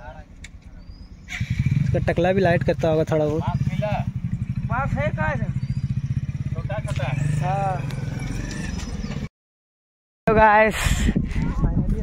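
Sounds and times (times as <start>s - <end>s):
voices: 0.0s - 9.2s
engine idling: 1.3s - 8.2s.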